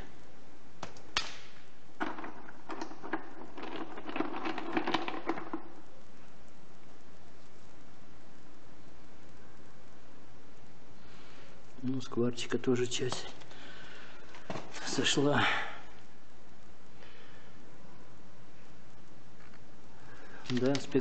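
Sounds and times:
stones clicking against each other: 0:00.8 - 0:05.8.

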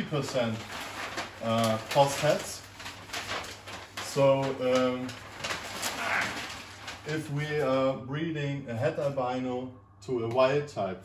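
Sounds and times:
paper rustling and crackling: 0:00.0 - 0:07.7.

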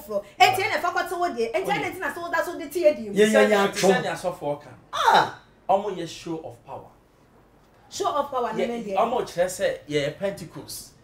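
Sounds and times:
conversational speech: 0:00.0 - 0:07.0, 0:07.9 - 0:11.0.

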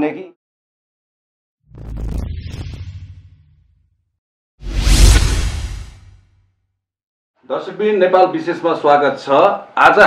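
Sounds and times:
whoosh: 0:04.6 - 0:06.4.

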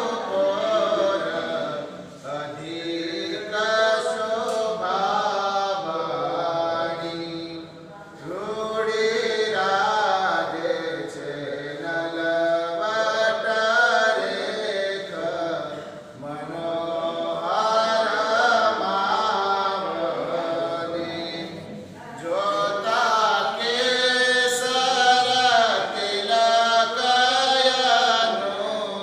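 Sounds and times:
man singing devotional song: 0:00.0 - 0:29.0.

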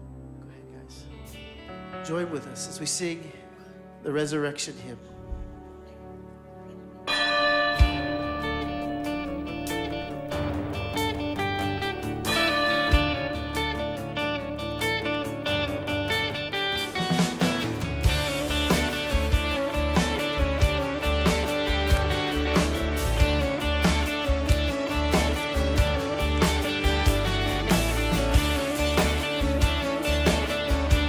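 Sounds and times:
keyboard: 0:00.0 - 0:31.0
guitars: 0:07.1 - 0:31.0
drums and bass beat: 0:07.4 - 0:15.0, 0:16.8 - 0:31.0.

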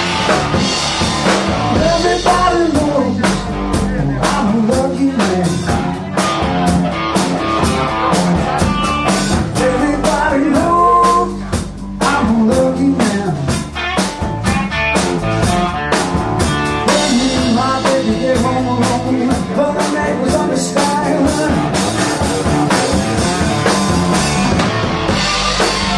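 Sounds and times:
blues-rock band playing: 0:00.0 - 0:25.9
steady drum beat: 0:00.0 - 0:25.9.

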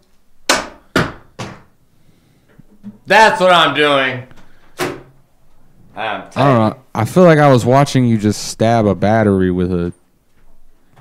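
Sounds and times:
sharp plastic knocks: 0:00.5 - 0:01.7.

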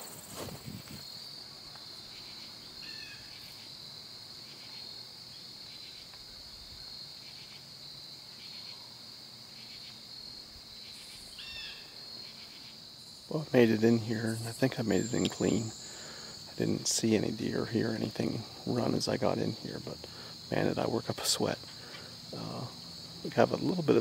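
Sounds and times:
crickets and insects chorus: 0:00.0 - 0:24.0
faint chirps: 0:10.8 - 0:24.0.

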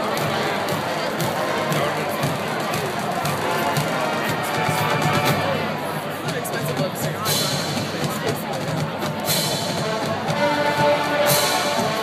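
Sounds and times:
marching band playing: 0:00.0 - 0:12.0
spectators chattering: 0:00.0 - 0:12.0.

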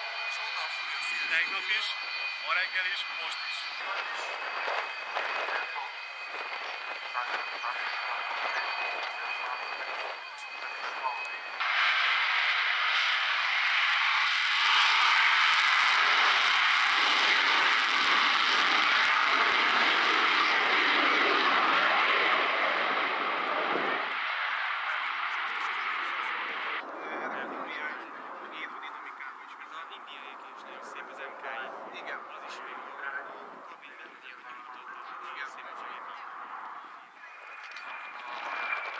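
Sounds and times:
jet engines roaring: 0:00.0 - 0:38.9.

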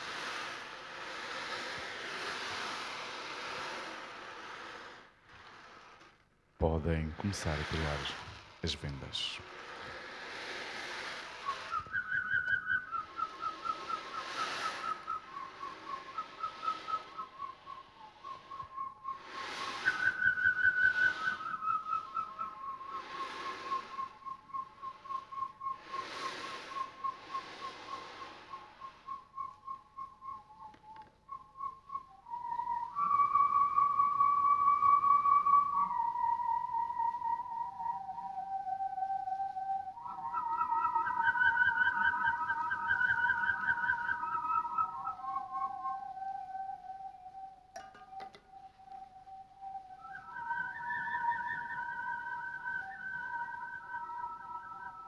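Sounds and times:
whirly tubes whistling: 0:00.0 - 0:55.0.

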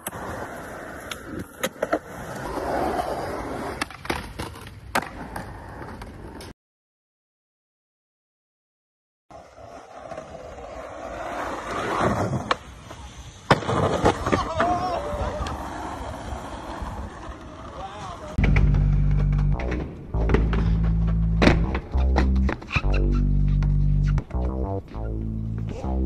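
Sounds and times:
skateboard wheels rolling on concrete: 0:00.0 - 0:06.5, 0:09.3 - 0:25.8
music with heavy bass line: 0:18.4 - 0:26.0.

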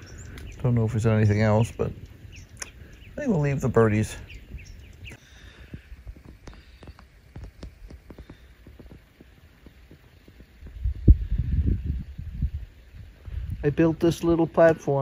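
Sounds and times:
wind buffeting microphone: 0:00.0 - 0:15.0
faint clicks and ticks: 0:04.9 - 0:10.8.

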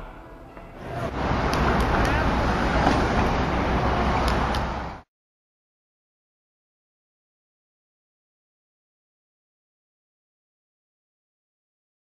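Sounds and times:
road traffic: 0:00.0 - 0:05.1.

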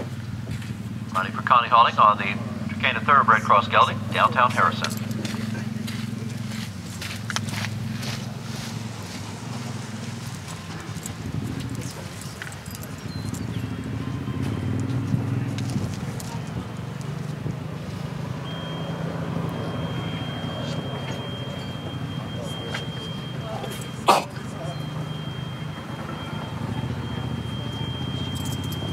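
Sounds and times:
faint murmured voices: 0:00.0 - 0:28.9
low engine-like hum: 0:00.0 - 0:28.9.

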